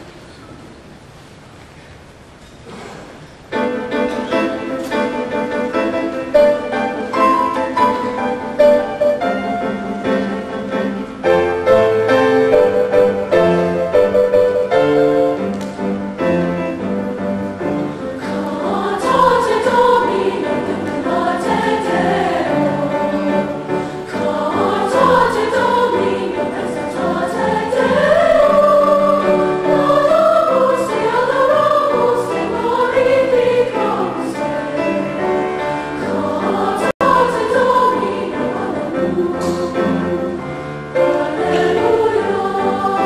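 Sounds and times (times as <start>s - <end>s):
piano accompaniment: 3.4s - 43.0s
women's choir singing: 17.6s - 43.0s.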